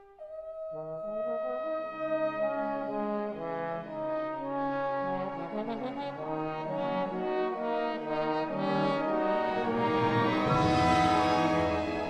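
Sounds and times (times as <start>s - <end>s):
orchestral brass held notes: 0.0s - 12.0s.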